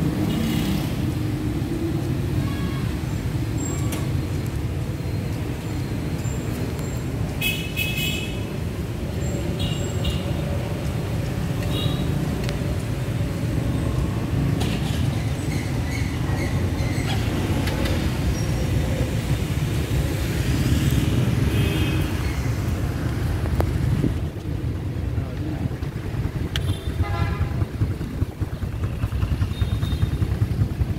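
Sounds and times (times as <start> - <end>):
road traffic rumble: 0.0 - 30.9
vehicle horns tooting: 26.6 - 27.6.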